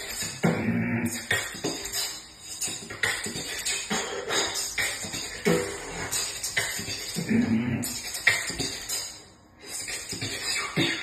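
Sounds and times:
human beatboxing: 0.0 - 11.0.

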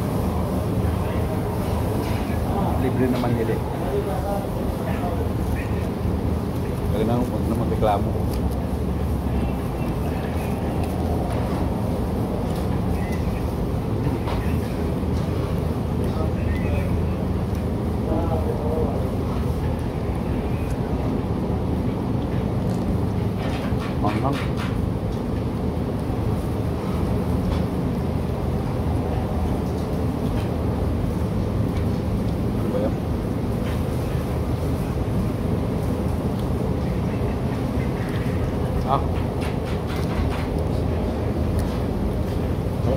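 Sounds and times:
faint voices murmuring: 0.0 - 24.7, 28.6 - 42.9.

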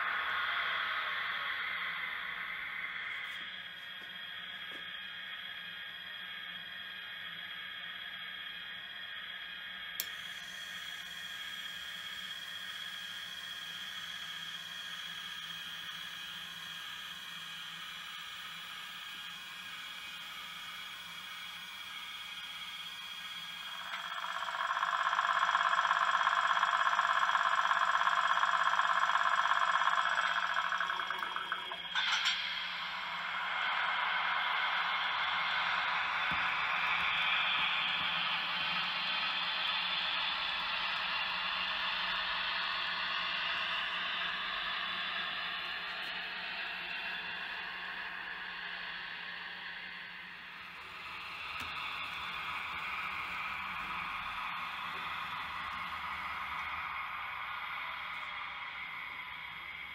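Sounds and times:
small electric motors whirring: 0.0 - 59.9.

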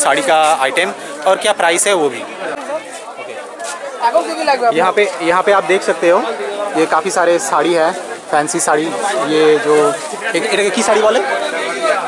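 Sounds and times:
faint background chatter: 0.0 - 12.0
man speaking: 4.1 - 11.7.

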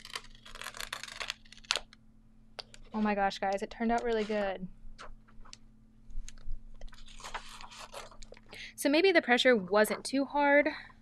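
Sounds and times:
stiff paper crackling: 0.0 - 2.0, 6.2 - 8.6.

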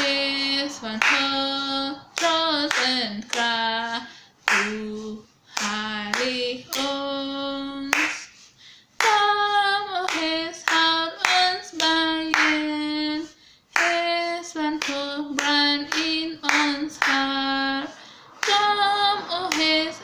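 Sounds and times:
hands clapping: 0.0 - 3.6, 4.4 - 5.0, 5.6 - 7.0, 7.8 - 8.4, 9.0 - 9.3, 10.0 - 12.8, 13.8 - 14.1, 14.7 - 17.8, 18.4 - 20.0
woman singing a hymn: 0.0 - 8.3, 9.0 - 20.0.

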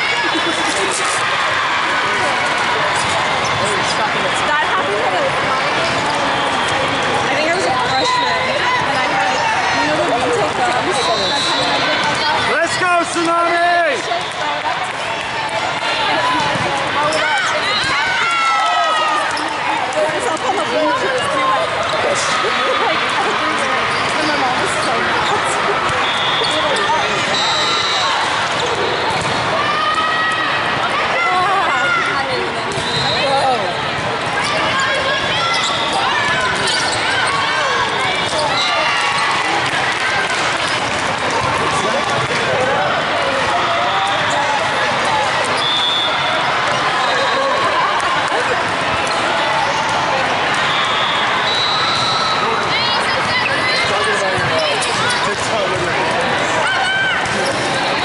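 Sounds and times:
overlapping chatter: 0.0 - 58.0
players shouting: 0.0 - 58.0.

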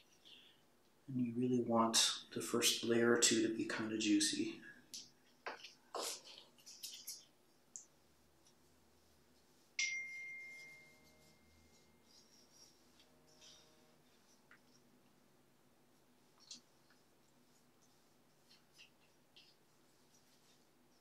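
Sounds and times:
brush clicks and taps: 4.9 - 8.6, 14.2 - 15.2, 16.3 - 21.0.

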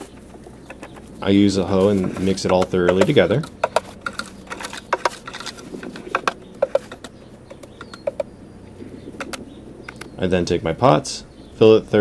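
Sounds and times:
hoe scraping potting mix: 0.0 - 12.0.

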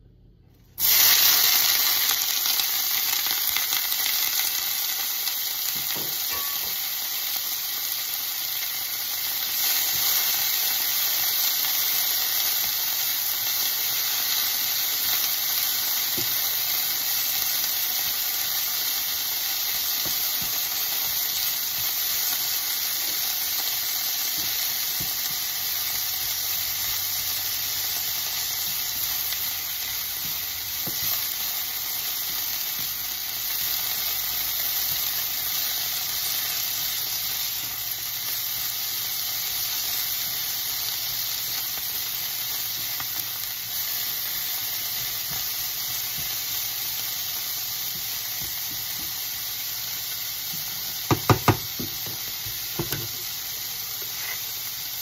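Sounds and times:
cabbage sizzling in a frying pan: 0.7 - 55.0
spatula scraping a pan: 54.0 - 54.5.

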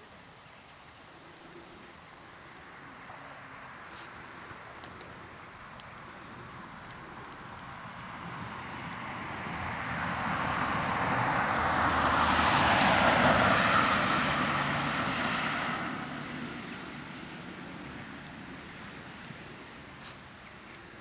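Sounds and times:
vehicle passing by: 2.9 - 21.0.

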